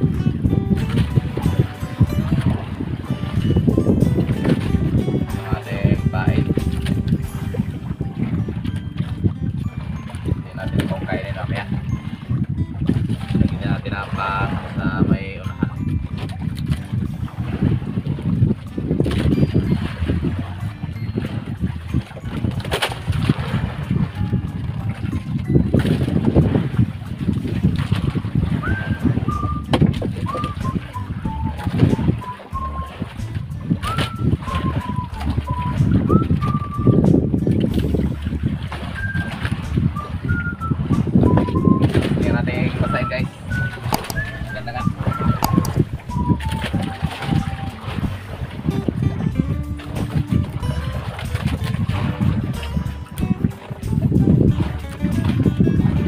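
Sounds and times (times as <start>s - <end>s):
thin high melody: 0.0s - 17.5s, 19.2s - 23.2s, 24.1s - 26.4s, 28.6s - 38.0s, 38.9s - 55.9s
wind and sea rumbling: 0.0s - 56.0s.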